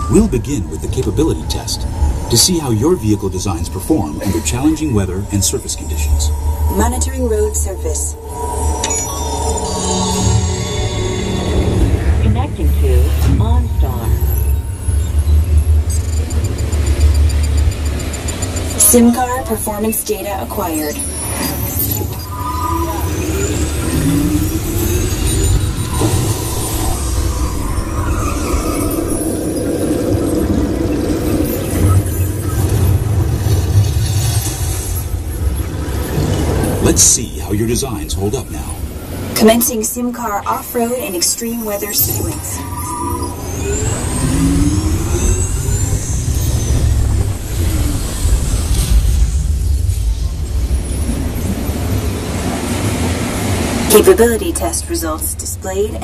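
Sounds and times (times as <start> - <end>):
ride vehicle low rumble: 0.0 - 9.7, 10.4 - 39.6
electronic tones gliding upward: 0.0 - 19.6, 41.2 - 49.5
noisy whoosh: 0.0 - 19.8
rising sweep: 41.7 - 54.7.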